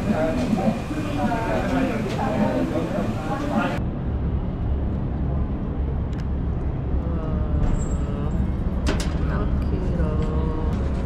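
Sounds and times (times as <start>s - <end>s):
indoor crowd chatter: 0.0s - 3.8s.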